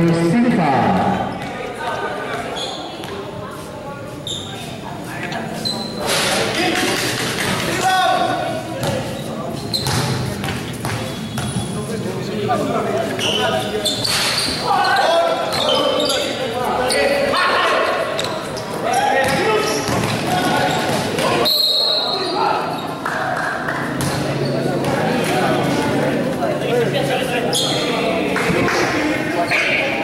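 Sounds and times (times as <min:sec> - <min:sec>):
basketball bouncing on court: 0:09.8 - 0:11.8, 0:19.2 - 0:21.2
people calling out: 0:13.2 - 0:23.7.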